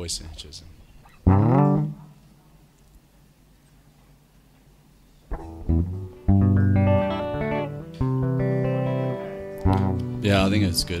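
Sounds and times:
low guitar note: 0:01.3 - 0:02.1, 0:05.3 - 0:11.0.

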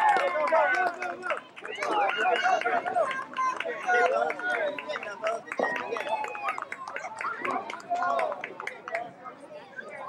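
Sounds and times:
children chattering: 0:01.0 - 0:10.0.

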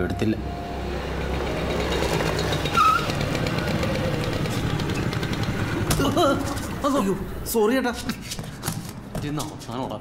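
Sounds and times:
motorcycle engines running: 0:00.6 - 0:07.5.

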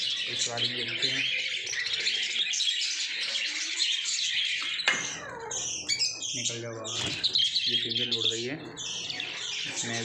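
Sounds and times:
budgerigars chattering and chirping: 0:00.0 - 0:10.0.

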